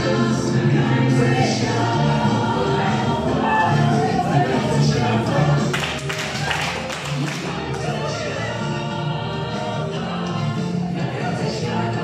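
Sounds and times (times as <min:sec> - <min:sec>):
group of voices singing: 0:00.0 - 0:12.0.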